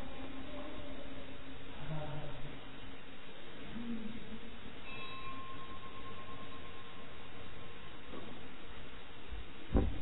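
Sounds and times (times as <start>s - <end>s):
background hiss: 0.0s - 10.0s
clear high tone ringing: 4.8s - 8.1s.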